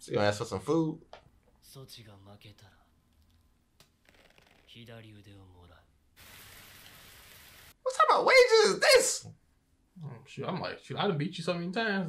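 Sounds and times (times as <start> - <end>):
rain-like rushing hiss: 6.2 - 7.8.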